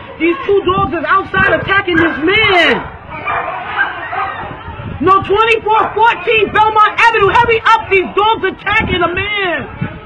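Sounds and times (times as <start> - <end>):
dogs barking and yelping: 1.4 - 4.8, 5.6 - 6.8.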